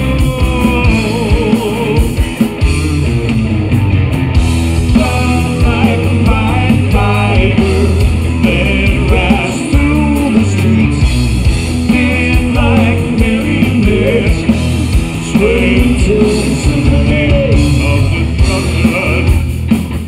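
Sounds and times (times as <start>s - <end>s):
sung lead vocal: 0.0s - 3.1s, 4.6s - 19.8s
bass guitar: 0.0s - 20.0s
distorted electric guitars: 0.0s - 20.0s
drums: 0.0s - 20.0s.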